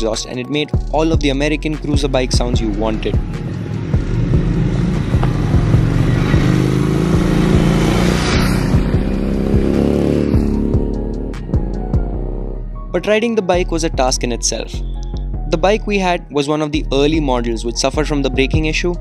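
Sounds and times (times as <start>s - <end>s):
background music: 0.0s - 19.0s
motorcycle engine accelerating: 2.6s - 12.8s.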